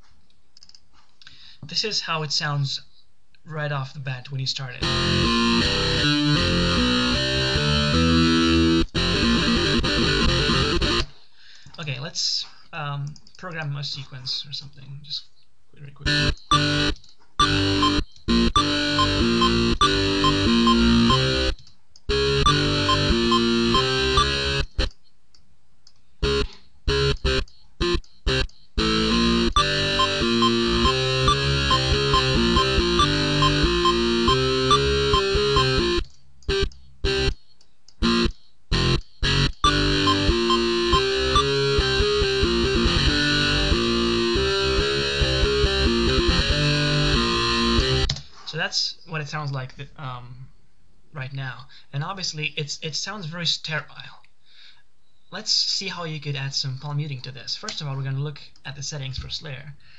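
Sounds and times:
distorted electric guitar riff: 4.8s - 11.1s, 16.0s - 24.9s, 26.2s - 37.3s, 38.0s - 48.1s.

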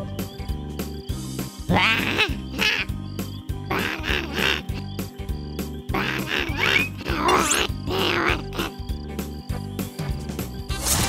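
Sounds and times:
background music with steady beat: 0.0s - 11.0s
cartoon bat cries: 1.7s - 3.0s, 3.7s - 4.9s, 5.9s - 8.8s.

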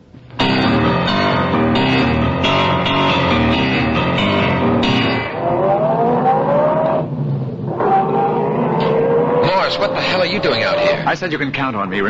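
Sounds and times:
short music cue: 0.4s - 5.4s
engine sound effect accelerating: 0.6s - 11.2s.

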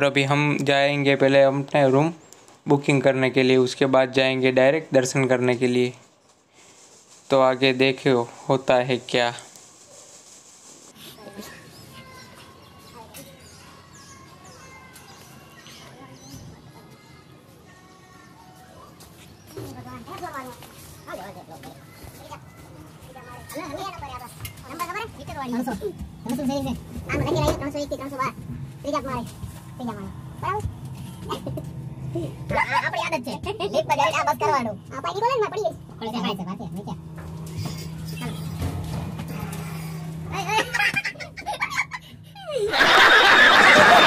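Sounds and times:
steady low hum: 22.4s - 44.0s
voices and laughter: 31.1s - 33.8s, 40.3s - 44.0s
studio audience laughter and clapping: 42.7s - 44.0s.

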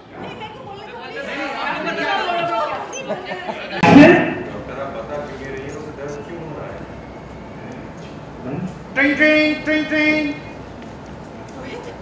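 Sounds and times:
people chattering excitedly: 0.0s - 6.6s.

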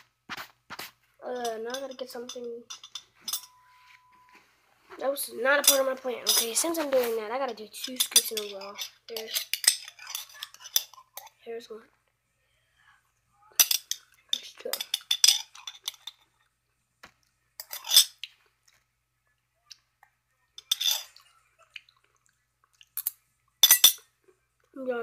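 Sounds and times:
spoon clinking and scraping: 1.3s - 4.2s, 5.6s - 6.7s, 7.5s - 11.4s, 13.6s - 16.3s, 17.6s - 18.3s, 20.6s - 21.2s, 23.0s - 24.1s.

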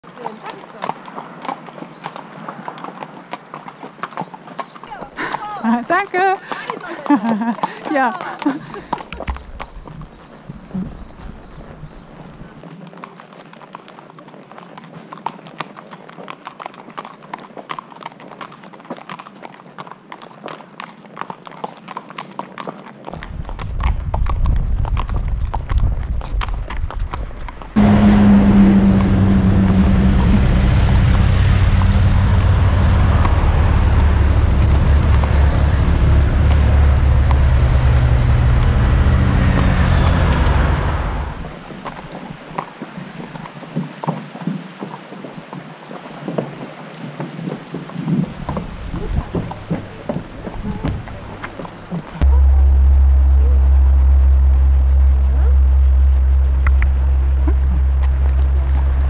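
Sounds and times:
horse hooves clip-clopping: 0.0s - 52.4s
road traffic engine drone: 23.2s - 42.4s, 48.3s - 59.0s.

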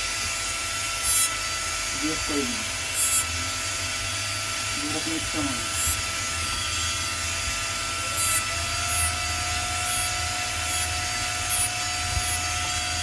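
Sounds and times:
rotary handpiece whining: 1.0s - 13.0s
bur scratching metal: 3.0s - 3.3s, 8.1s - 13.0s.

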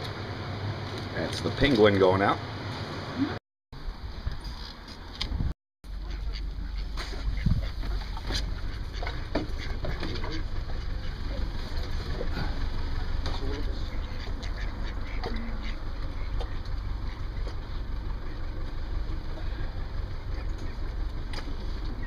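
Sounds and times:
steady low rumble: 5.2s - 22.0s
duck quacking: 6.0s - 11.2s, 13.4s - 17.6s.

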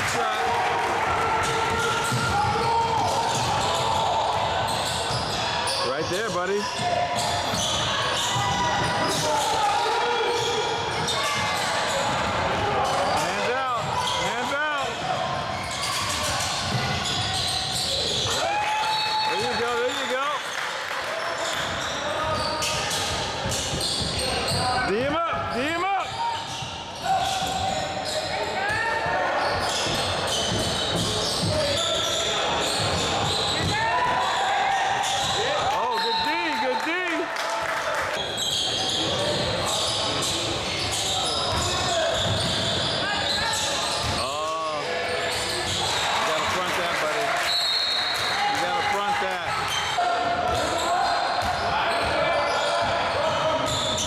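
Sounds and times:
sneakers squeaking on court: 1.8s - 19.6s, 21.4s - 28.6s, 29.3s - 33.8s, 38.2s - 44.4s, 45.1s - 46.0s, 49.6s - 54.0s.

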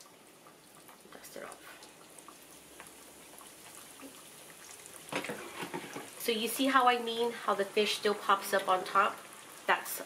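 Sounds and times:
fish sizzling in oil: 0.0s - 10.0s.

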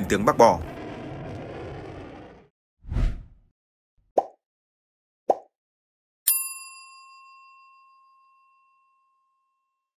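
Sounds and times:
bell ding: 6.3s - 9.9s.

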